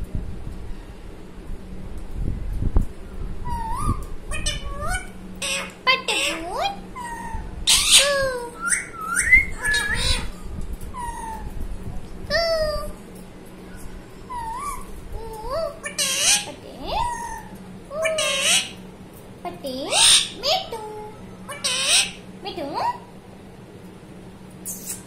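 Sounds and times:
parakeet whistled calls: 3.4s - 11.5s, 15.8s - 18.8s, 19.9s - 20.5s, 21.4s - 22.2s
parakeet harsh screeches: 3.5s - 10.4s, 15.7s - 18.8s, 19.9s - 20.4s, 21.4s - 22.2s.

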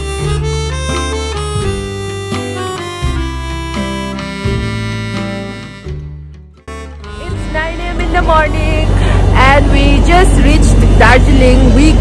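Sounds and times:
low rumble of vehicle engines: 6.7s - 12.0s.

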